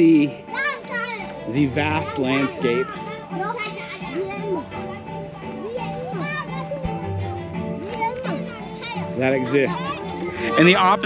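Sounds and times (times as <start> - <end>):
background music with held tones: 0.0 - 11.0
young children chattering: 0.0 - 11.0.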